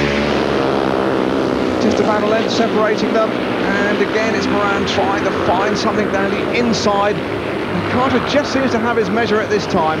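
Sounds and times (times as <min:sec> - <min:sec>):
motorcycle engines racing at high revs: 0:00.0 - 0:10.0.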